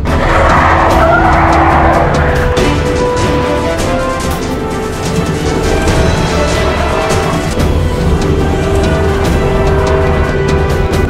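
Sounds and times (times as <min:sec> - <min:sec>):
tyres screeching: 0:00.0 - 0:10.8
background music: 0:00.0 - 0:11.0.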